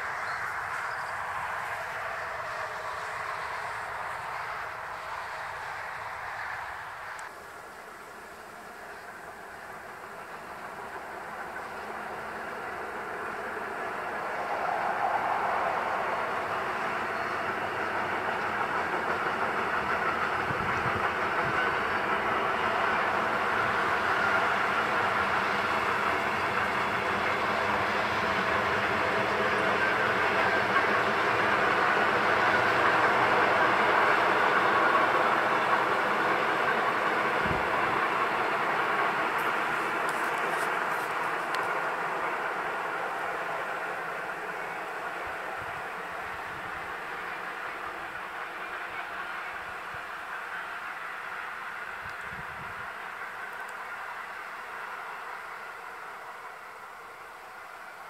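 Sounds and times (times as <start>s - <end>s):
freight train running past: 0.0s - 58.0s.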